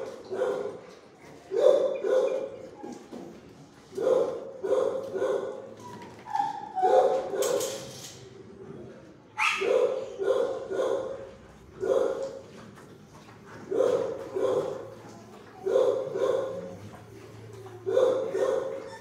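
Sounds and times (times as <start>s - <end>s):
dogs barking: 0.0s - 3.0s, 3.9s - 7.7s, 9.4s - 12.4s, 13.5s - 19.0s.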